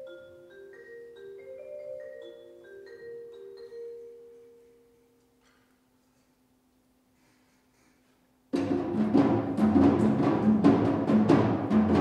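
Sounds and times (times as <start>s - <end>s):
mallet percussion notes ringing: 0.0s - 5.3s
concert band music: 8.6s - 12.0s.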